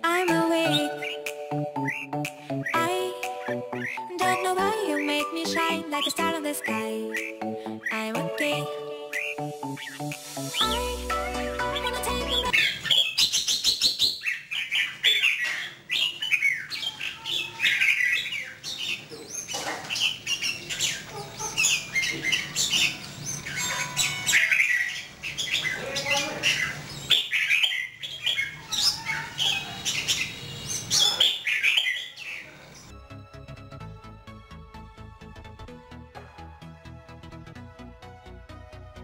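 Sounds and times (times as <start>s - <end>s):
bird chirping and whistling: 0.6s - 2.8s, 3.4s - 5.4s, 6.0s - 8.1s, 9.1s - 21.0s, 26.5s - 32.2s.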